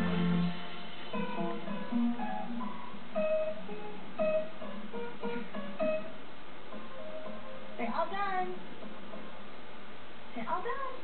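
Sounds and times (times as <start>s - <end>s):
acoustic guitar plucked melody: 0.0s - 7.9s.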